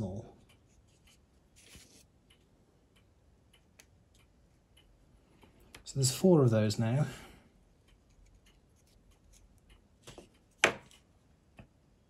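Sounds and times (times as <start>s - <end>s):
hand tools ticking on paper: 7.8s - 10.5s.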